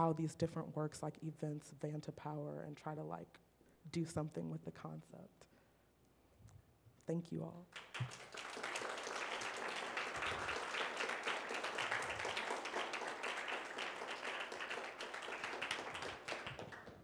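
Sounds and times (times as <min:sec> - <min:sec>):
audience applauding: 0:07.8 - 0:17.0.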